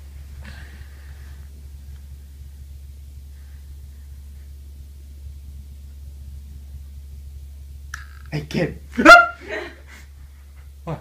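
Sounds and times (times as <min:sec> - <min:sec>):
man startled yelp: 0:09.0 - 0:09.7.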